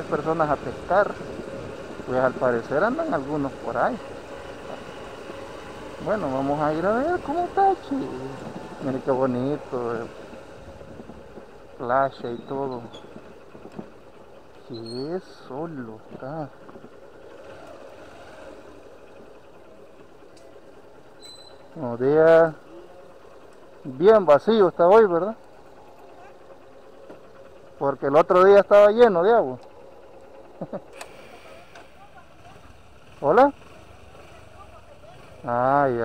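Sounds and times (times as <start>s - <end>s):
small motorcycle engine running: 0.0s - 36.0s
vehicle rumbling on dirt road: 0.0s - 36.0s.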